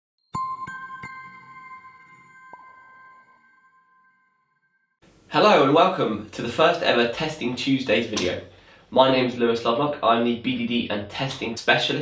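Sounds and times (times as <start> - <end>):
bell-like chime notes: 0.3 - 5.0.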